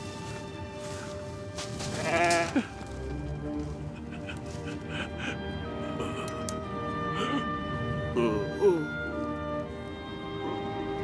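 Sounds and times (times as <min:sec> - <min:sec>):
background music: 0:00.0 - 0:11.0
ram bleating: 0:01.9 - 0:02.7.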